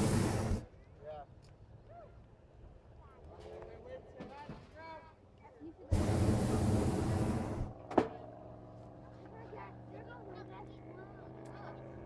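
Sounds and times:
propane burner roar: 0:00.0 - 0:00.7, 0:05.9 - 0:08.1.

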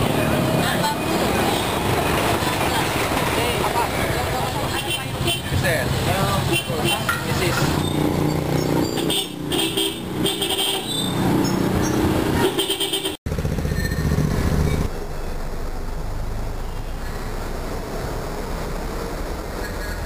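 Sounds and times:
people's voices: 0:00.0 - 0:07.8
motorcycle engines running: 0:00.0 - 0:17.5
horn toots: 0:08.8 - 0:13.2.

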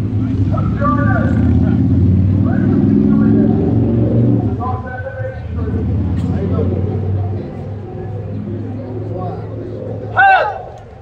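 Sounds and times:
faint voices: 0:00.0 - 0:11.0
loud low rumble: 0:00.8 - 0:11.0.

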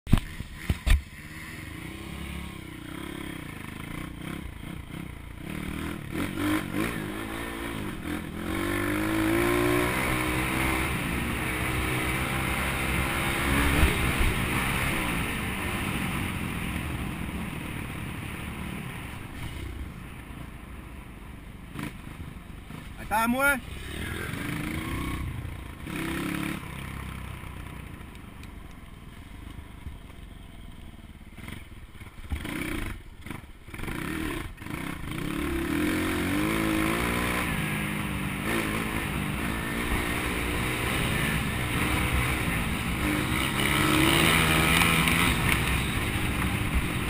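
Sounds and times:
pit bike engine revving: 0:00.1 - 0:17.1, 0:22.7 - 0:27.3, 0:31.4 - 0:47.0.

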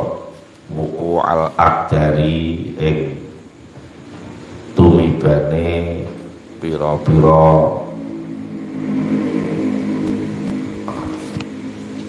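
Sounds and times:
vehicle engine running: 0:03.7 - 0:12.0.

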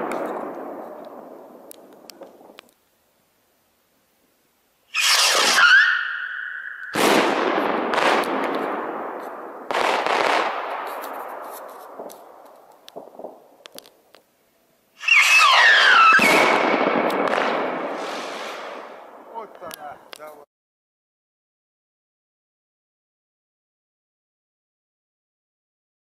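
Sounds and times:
whistling firework rockets: 0:00.0 - 0:02.7, 0:04.9 - 0:13.9, 0:15.0 - 0:19.5
firework shells bursting: 0:00.0 - 0:02.9, 0:04.9 - 0:14.3, 0:15.0 - 0:20.4
firework crackle: 0:00.0 - 0:03.0, 0:04.8 - 0:20.4.

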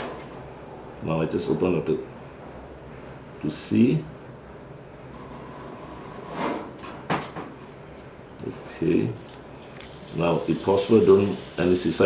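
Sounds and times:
steady hiss: 0:08.4 - 0:12.0.

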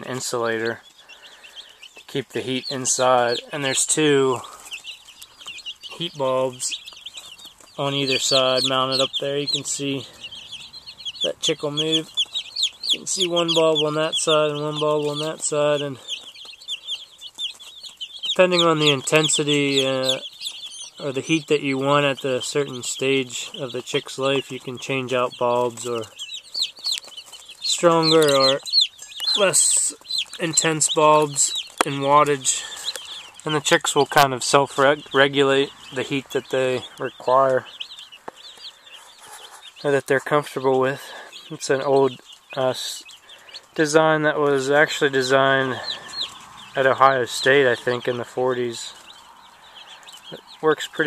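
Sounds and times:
chicks peeping: 0:00.0 - 0:51.0.

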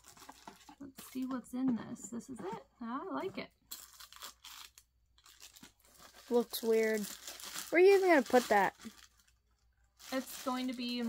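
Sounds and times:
plastic wrapping crinkling: 0:00.0 - 0:01.3, 0:03.7 - 0:11.0.

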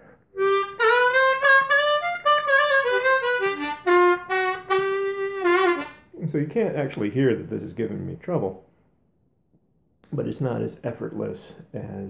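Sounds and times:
harmonica melody: 0:00.0 - 0:06.1.

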